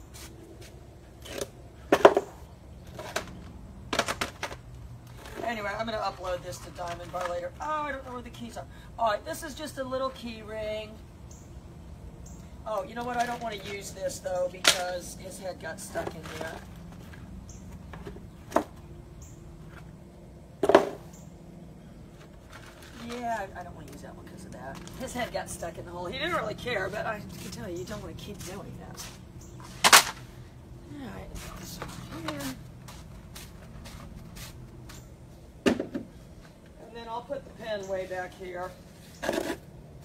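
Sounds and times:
small objects rustling and clacking: 6.3 - 7.6, 12.8 - 14.0, 15.7 - 18.8, 22.1 - 24.0, 24.7 - 25.3.

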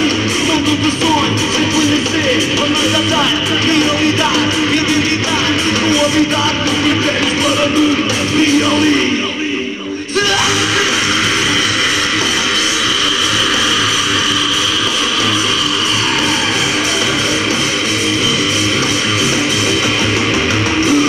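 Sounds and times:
rock band playing live: 0.0 - 9.4, 10.1 - 21.0.

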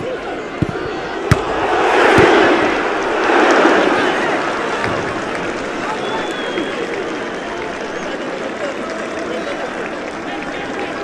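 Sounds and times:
stadium crowd shouting: 0.0 - 11.0
sharp thud: 0.6 - 2.9.

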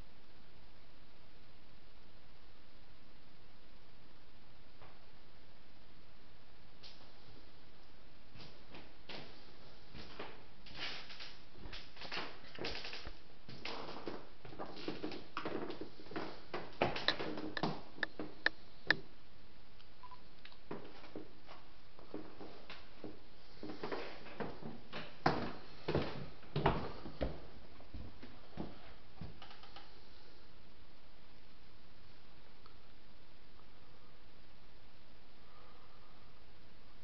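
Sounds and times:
footsteps on wooden stairs: 20.7 - 29.4.

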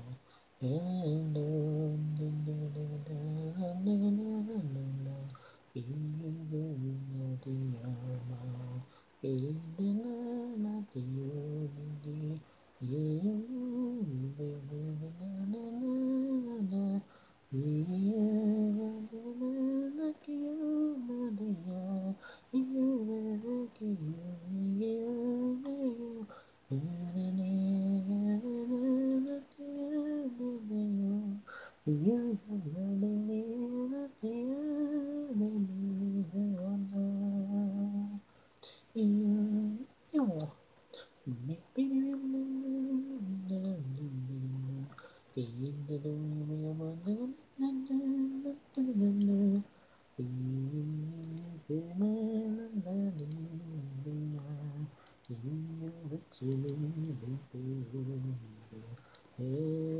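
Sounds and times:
person singing a cappella: 0.0 - 59.9
singer breathing: 0.2 - 0.6, 5.3 - 5.7, 17.0 - 17.4, 22.2 - 22.5, 26.3 - 26.6, 31.4 - 31.8, 38.3 - 38.9, 44.9 - 45.3, 49.7 - 50.1.

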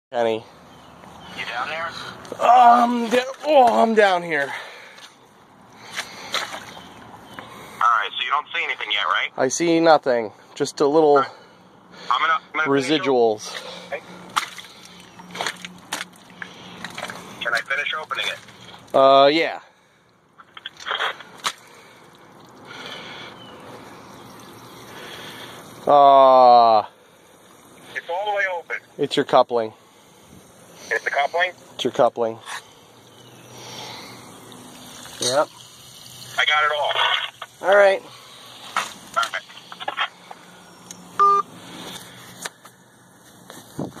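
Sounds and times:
water escaping from leaking pipe: 13.4 - 19.2, 19.8 - 41.1
short electronic beep: 41.2 - 41.5.

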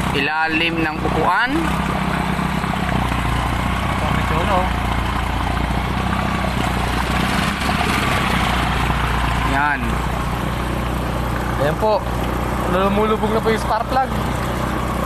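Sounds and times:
motorcycle engine running: 0.0 - 15.0
water sloshing and splashing: 0.0 - 15.0.

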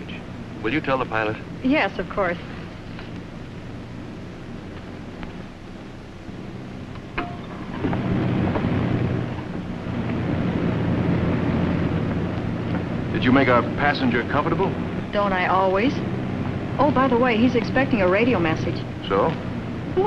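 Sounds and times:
aircraft engine drone in cabin: 0.0 - 20.0.

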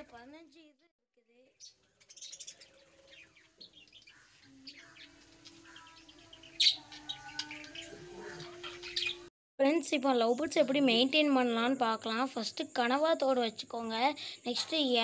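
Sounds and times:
budgerigars chirping and chattering: 1.6 - 9.3.

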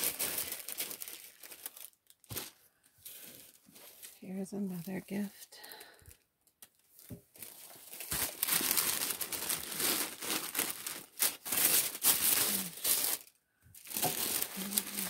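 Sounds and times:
tissue paper crinkling: 0.0 - 5.3, 6.9 - 15.0.

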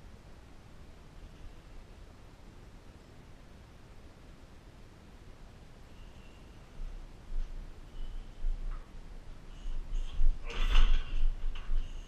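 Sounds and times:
high squeaks and creaks: 9.5 - 12.0.

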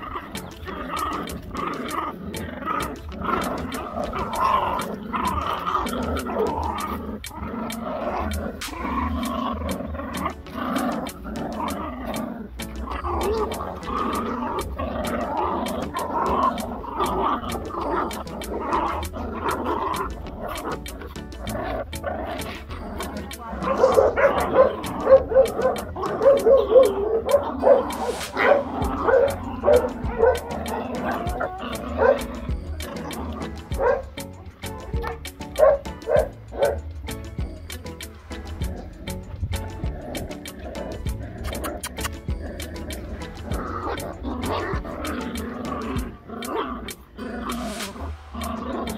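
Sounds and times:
background music with steady beat: 0.0 - 48.9
puppies yipping and barking: 0.0 - 48.9.

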